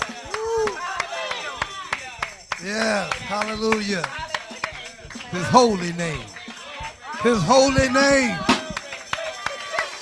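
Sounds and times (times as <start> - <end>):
rhythmic hand claps: 0.0 - 10.0.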